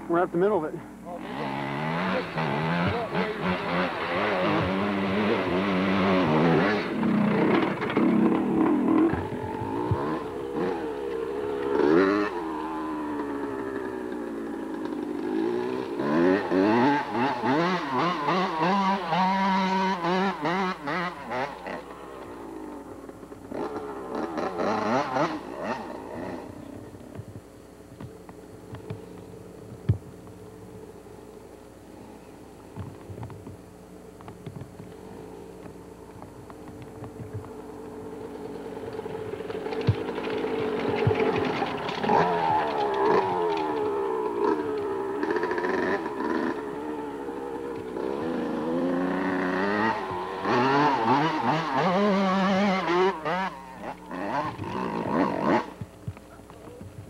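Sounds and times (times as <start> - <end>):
dirt bike engine revving: 0.0 - 56.9.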